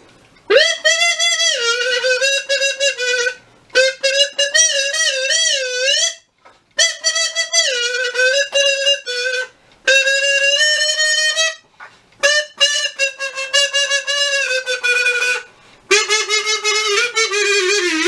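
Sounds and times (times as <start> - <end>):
reedy wind instrument tune: 0.5 - 18.0.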